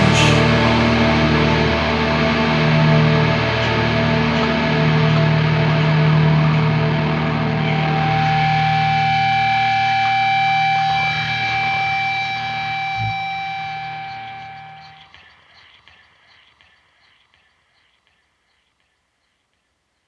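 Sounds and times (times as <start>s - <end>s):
distorted electric guitar chords: 0.0s - 15.2s.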